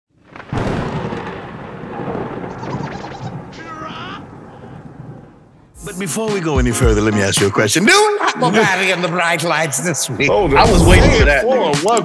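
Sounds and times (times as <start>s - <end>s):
thunder rumble: 0.1s - 6.2s, 10.1s - 11.4s
sudden loud burst: 0.3s - 5.9s, 10.4s - 11.4s
echoing voice: 5.8s - 12.0s.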